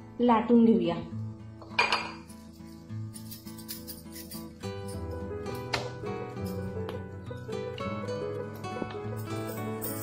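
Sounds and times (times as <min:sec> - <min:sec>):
background music: 0:00.0 - 0:10.0
metallic clink: 0:03.1 - 0:05.1.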